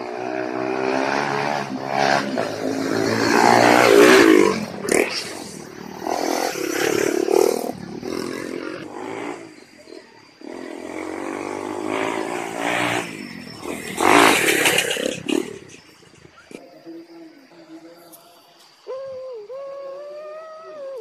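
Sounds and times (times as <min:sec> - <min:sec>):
dirt bikes revving past: 0:00.0 - 0:16.6.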